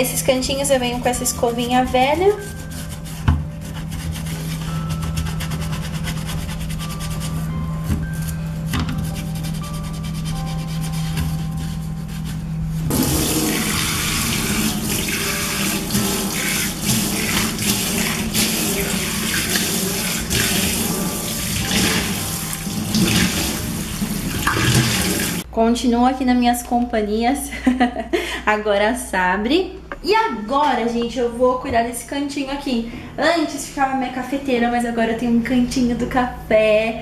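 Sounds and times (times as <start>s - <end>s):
toothbrush scrubbing a metal drain: 0.2s - 25.4s
tap water running into sink: 12.9s - 25.4s.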